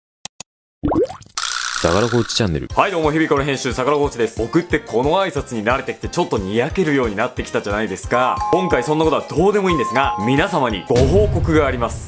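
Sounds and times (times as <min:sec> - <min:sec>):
man speaking: 0:01.8 - 0:02.8, 0:08.0 - 0:11.4.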